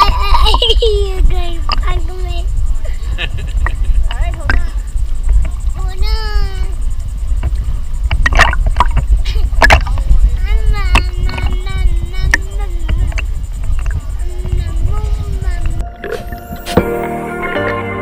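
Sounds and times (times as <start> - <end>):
wind on microphone: 0.0 - 16.9
sloshing water: 8.2 - 10.0
toddler babbling and squealing: 10.4 - 13.1.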